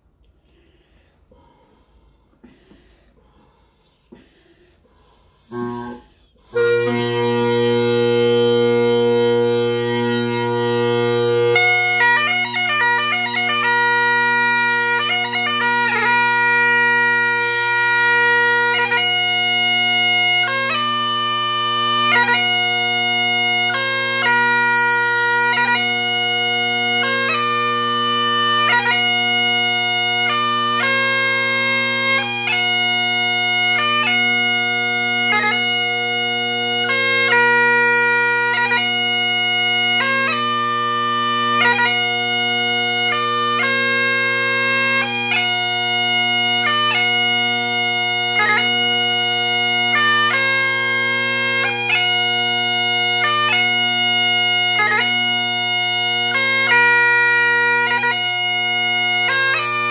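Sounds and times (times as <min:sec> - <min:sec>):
bagpipe drones: 0:04.8 - 0:59.9
bagpipe chanter melody: 0:05.2 - 0:59.9.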